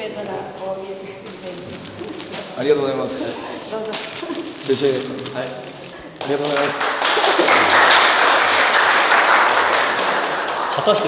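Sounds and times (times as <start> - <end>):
people talking: 0.0 - 7.8, 10.8 - 11.0.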